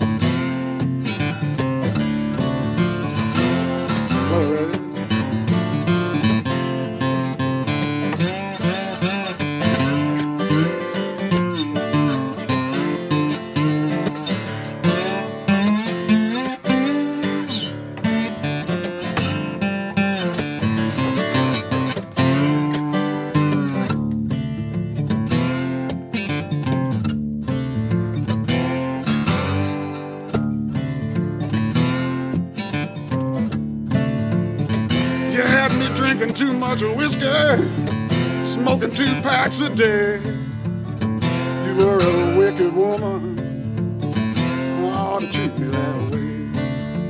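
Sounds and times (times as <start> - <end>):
acoustic guitar accompaniment: 0.0 - 47.0
acoustic guitar lead with bent notes: 0.0 - 47.0.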